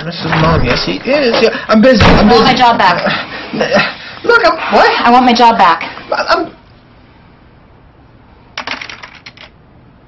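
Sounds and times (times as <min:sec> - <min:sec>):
rattle of sharp clicks: 0:08.6 - 0:09.6.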